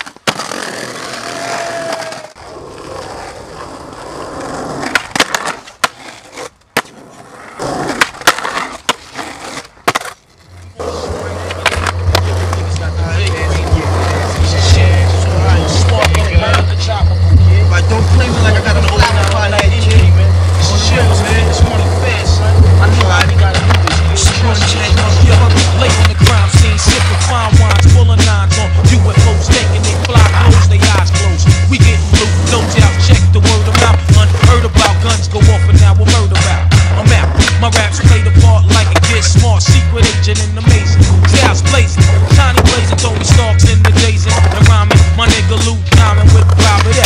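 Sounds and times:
skateboard clacking: 0.0s - 47.0s
skateboard scraping on ledge: 0.0s - 47.0s
skateboard wheels rolling on pavement: 0.0s - 47.0s
hip-hop track with heavy bass: 11.2s - 47.0s.

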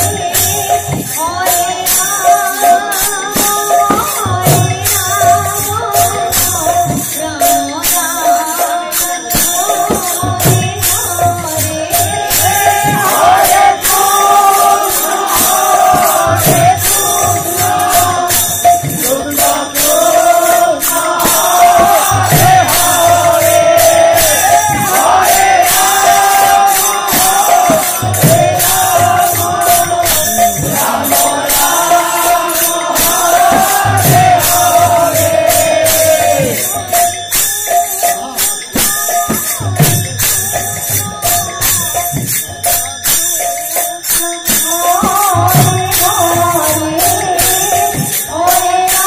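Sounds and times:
hand cymbals: 0.0s - 49.0s
person singing devotional melody: 0.0s - 49.0s
drum stroke: 9.9s - 37.1s.

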